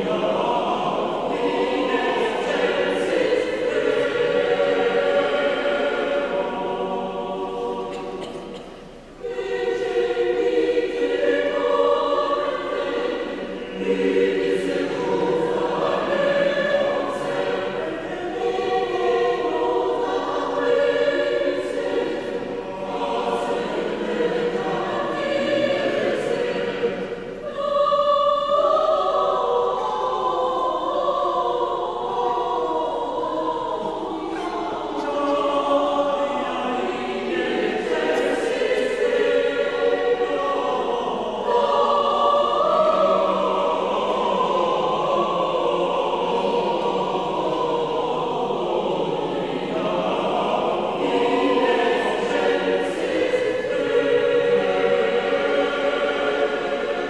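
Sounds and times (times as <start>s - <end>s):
choir singing: 0.0s - 57.0s.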